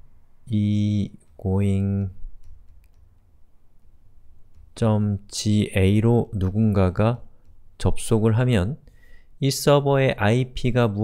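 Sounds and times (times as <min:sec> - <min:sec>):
stylus tapping on pen tablet: 0:02.0 - 0:05.0, 0:06.3 - 0:08.1.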